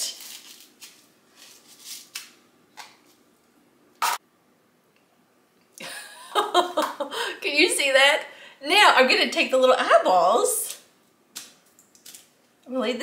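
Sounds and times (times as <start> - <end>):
sprinkles rustling in plastic bowl: 0.0 - 2.3
woman laughing: 5.8 - 7.5.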